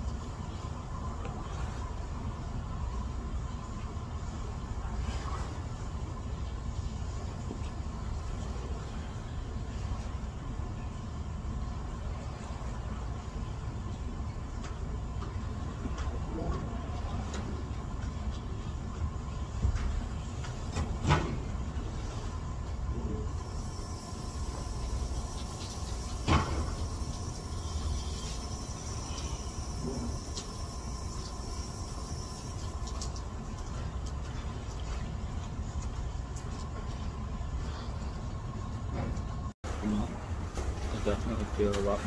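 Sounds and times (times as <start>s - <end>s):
low rumble and hum of room: 0.0s - 42.0s
faint high whine: 21.9s - 33.9s.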